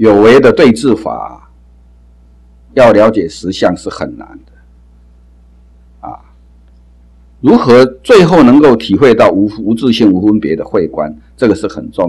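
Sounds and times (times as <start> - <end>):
low electrical hum: 0.0 - 12.0
man's throat sound: 6.0 - 6.4.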